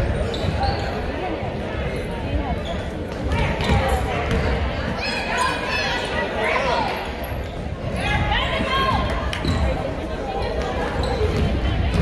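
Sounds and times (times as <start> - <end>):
voices of players and spectators: 0.0 - 12.0
basketball bouncing on wooden floor: 3.3 - 4.5.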